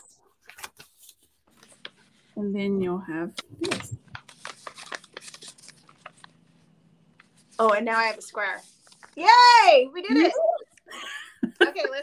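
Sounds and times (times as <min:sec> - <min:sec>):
paper rustling and crinkling: 0:00.3 - 0:02.3, 0:03.4 - 0:09.6.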